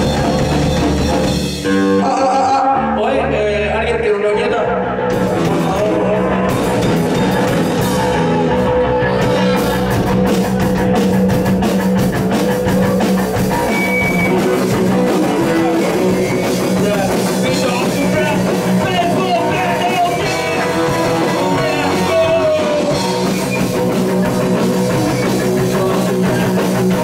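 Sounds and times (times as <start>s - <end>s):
drum kit: 0.0s - 2.7s, 5.0s - 27.0s
bass guitar: 0.0s - 27.0s
electric guitars: 0.0s - 27.0s.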